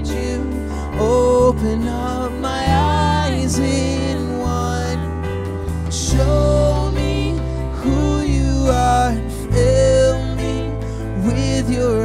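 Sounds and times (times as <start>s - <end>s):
live band playing slow song: 0.0s - 12.0s.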